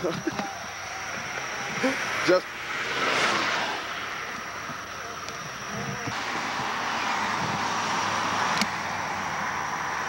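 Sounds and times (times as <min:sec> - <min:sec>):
vehicles passing on highway: 0:00.0 - 0:10.0.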